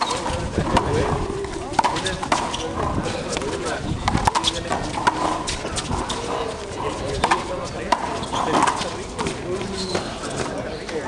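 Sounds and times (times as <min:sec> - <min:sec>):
background voices: 0:00.0 - 0:11.0.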